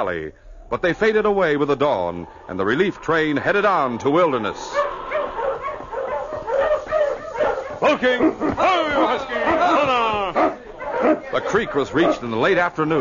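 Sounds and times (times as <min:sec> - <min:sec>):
dogs barking and yelping: 0:01.8 - 0:13.0.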